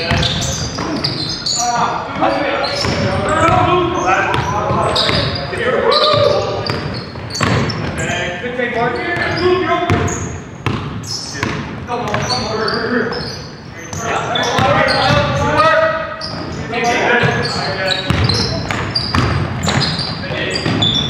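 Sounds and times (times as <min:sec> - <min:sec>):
basketball bouncing on gym floor: 0:00.0 - 0:01.2, 0:02.1 - 0:08.0, 0:09.1 - 0:12.4, 0:17.2 - 0:21.0
players shouting: 0:00.1 - 0:06.7.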